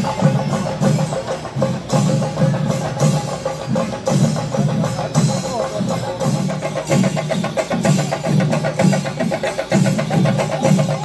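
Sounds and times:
folk percussion ensemble drumming: 0.0 - 11.0.

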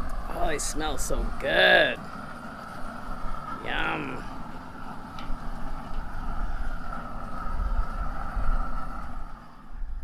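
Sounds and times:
propane torch flame roaring: 0.0 - 10.0.

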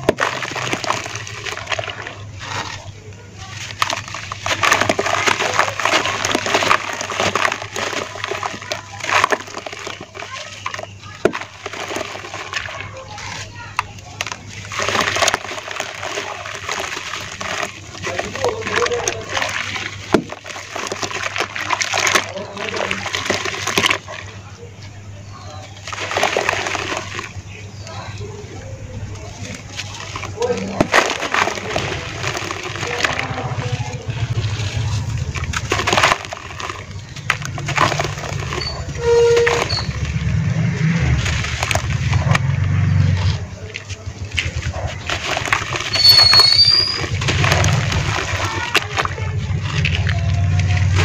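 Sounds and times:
hands squelching wet mud: 0.0 - 51.0
low steady rumble: 0.0 - 51.0
water sloshing and splashing: 0.0 - 51.0.

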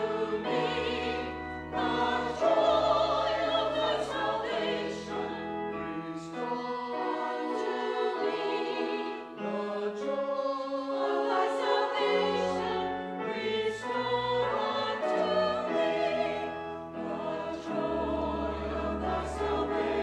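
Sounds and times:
church choir singing: 0.0 - 20.0.

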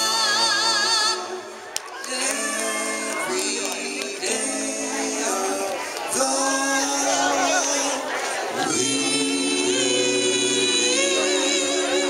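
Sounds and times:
vocal group singing through pa: 0.0 - 12.0.

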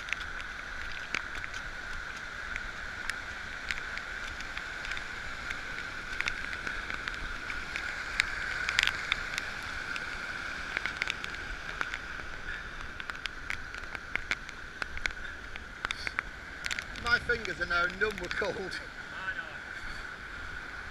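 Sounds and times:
raindrops striking camera: 0.0 - 19.0
heavy rain: 0.0 - 20.9
running water: 0.0 - 20.9.

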